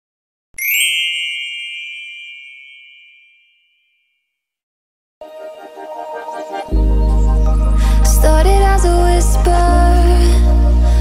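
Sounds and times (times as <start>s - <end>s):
bright chime ringing: 0.6s - 4.2s.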